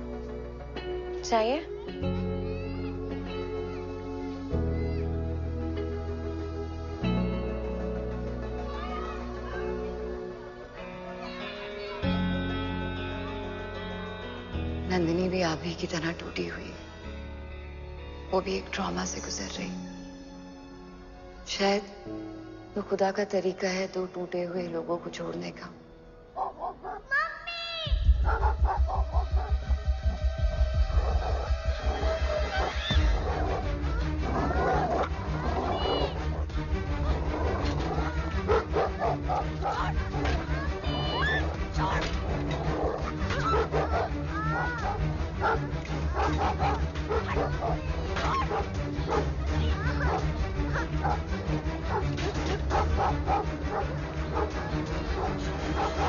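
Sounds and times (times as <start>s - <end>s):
film score with pounding bass: 24.8s - 56.0s
dog barking: 26.4s - 27.2s, 28.2s - 29.6s, 31.0s - 33.7s, 37.3s - 40.0s, 42.5s - 51.3s, 51.9s - 56.0s
dog yelp: 26.4s - 27.4s, 28.2s - 29.5s, 37.4s - 40.0s, 40.9s - 51.2s, 51.9s - 56.0s.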